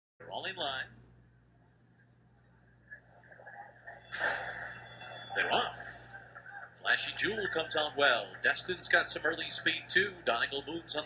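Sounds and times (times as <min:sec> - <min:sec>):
steady low hum: 0:00.2 - 0:11.0
faint scattered sounds: 0:01.1 - 0:11.0.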